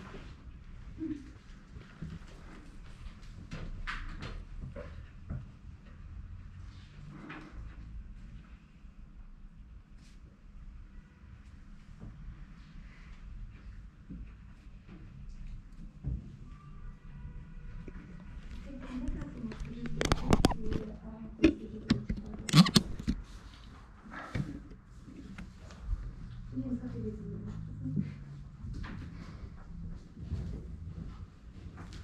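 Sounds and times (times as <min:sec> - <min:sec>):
handling noises: 0:18.6 - 0:25.6.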